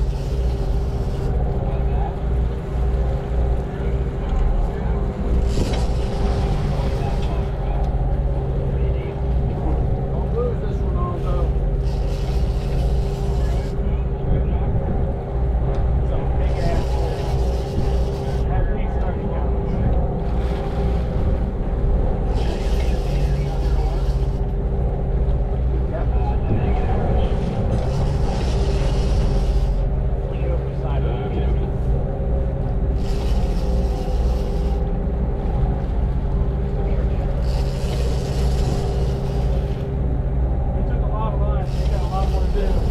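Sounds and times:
wind and water hiss: 0.0s - 3.9s, 4.7s - 15.6s, 16.3s - 18.6s, 19.9s - 30.8s, 31.8s - 40.7s, 41.6s - 42.9s
boat engines droning: 0.0s - 42.9s.

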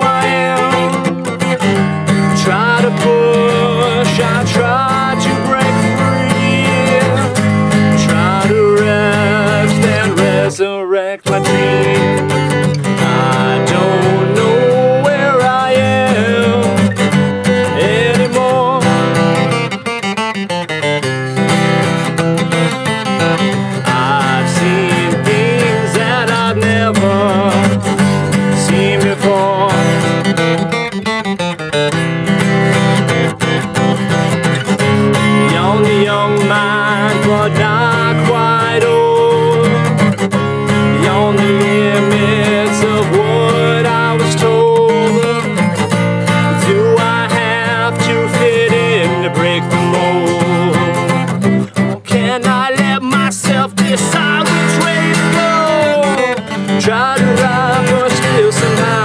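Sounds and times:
acoustic guitar chords: 0.0s - 59.0s.

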